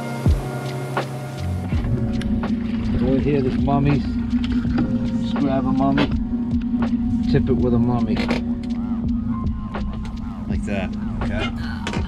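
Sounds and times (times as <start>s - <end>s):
outboard engine humming: 0.0s - 12.0s
people talking: 3.0s - 4.2s, 5.2s - 6.2s, 7.2s - 9.1s, 10.4s - 12.0s.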